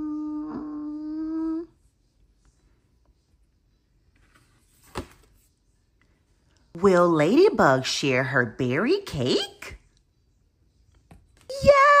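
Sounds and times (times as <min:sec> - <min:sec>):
woman humming: 0:00.0 - 0:01.8.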